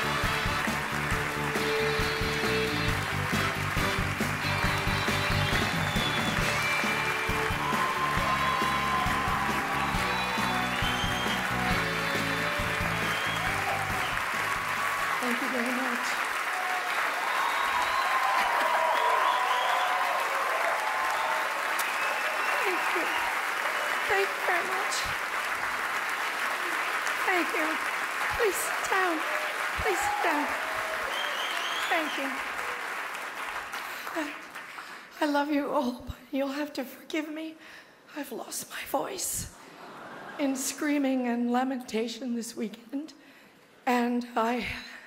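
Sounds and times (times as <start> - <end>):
music playing: 0.0 - 16.2
loud applause: 0.0 - 35.1.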